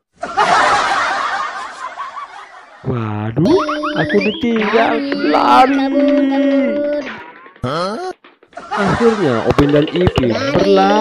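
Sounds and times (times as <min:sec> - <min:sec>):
crowd laughing: 0:00.2 - 0:07.7, 0:08.5 - 0:11.0.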